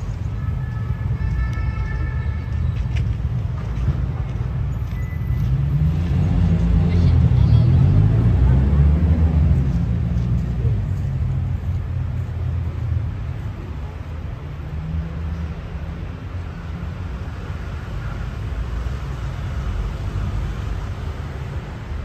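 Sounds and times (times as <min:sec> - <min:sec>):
city traffic rumble: 0:00.0 - 0:22.0
vehicle engine passing: 0:05.3 - 0:13.4.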